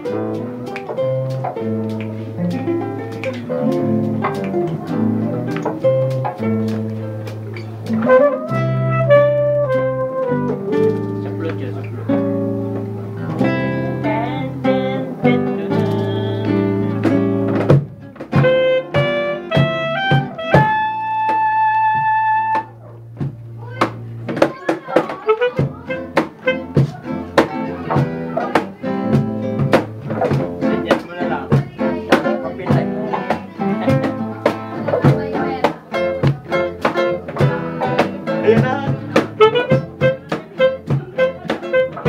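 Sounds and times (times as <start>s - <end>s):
bass line: 0.0s - 42.0s
nylon-string guitar chords: 0.0s - 42.0s
saxophone melody: 7.7s - 11.2s, 18.3s - 23.1s, 24.6s - 28.6s, 35.9s - 42.0s.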